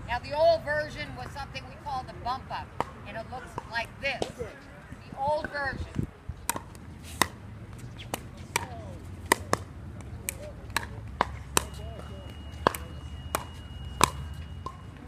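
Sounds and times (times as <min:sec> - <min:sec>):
ball bouncing on hard court: 0:06.5 - 0:14.8.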